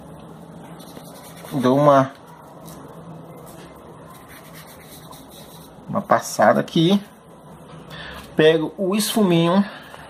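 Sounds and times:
toilet paper rubbing on paper: 0.8 - 1.9, 4.1 - 6.2.

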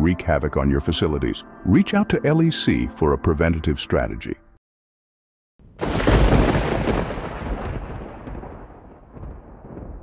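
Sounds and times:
thunderclap and rumble: 5.6 - 10.0.

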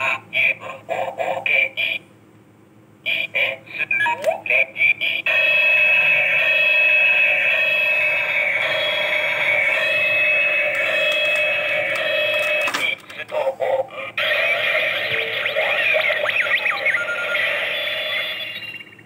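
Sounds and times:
toy belt electronic sound effects: 3.1 - 19.0.

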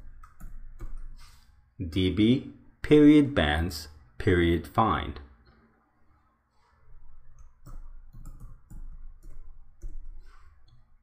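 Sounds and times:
computer keyboard typing: 0.0 - 1.2, 7.3 - 10.2.

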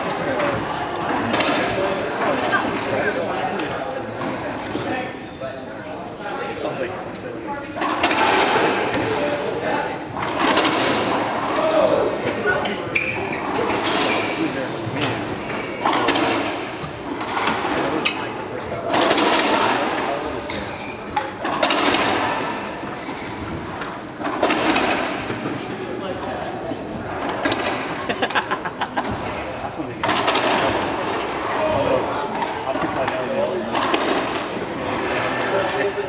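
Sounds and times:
racquetball hits echoing: 0.0 - 2.9, 7.8 - 26.3, 29.1 - 35.4.

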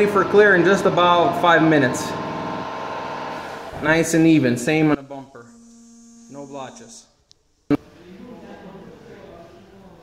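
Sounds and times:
electrical hum: 0.0 - 8.2.

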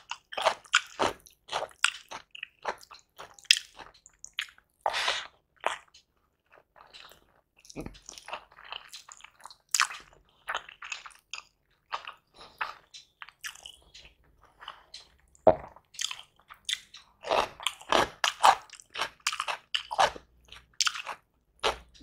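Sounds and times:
person chewing food: 0.0 - 22.0.

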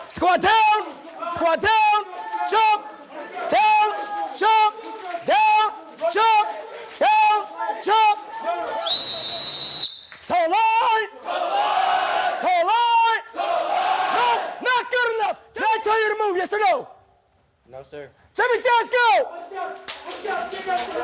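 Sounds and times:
men yelling harshly: 0.1 - 9.0, 10.3 - 16.9, 18.4 - 21.0
whistle blast: 8.8 - 10.3.

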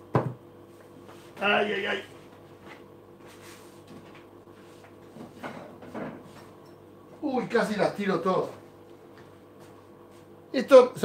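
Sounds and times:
low electrical hum: 0.0 - 11.0
objects knocking and scraping: 5.1 - 6.5.

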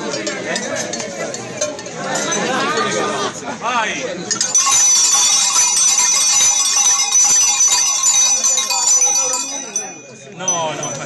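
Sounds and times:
small bells jangling: 4.3 - 11.0.

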